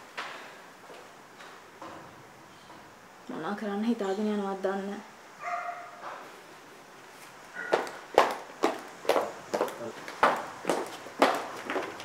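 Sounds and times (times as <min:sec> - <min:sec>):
dog barking: 0:05.4 - 0:06.1, 0:07.5 - 0:08.0.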